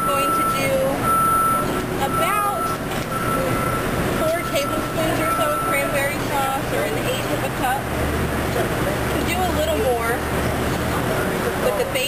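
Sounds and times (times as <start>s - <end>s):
people talking: 0.0s - 1.0s, 2.0s - 7.9s, 8.5s - 10.2s, 11.0s - 12.0s
reversing alarm beeping: 0.0s - 6.2s
street traffic noise: 0.0s - 12.0s.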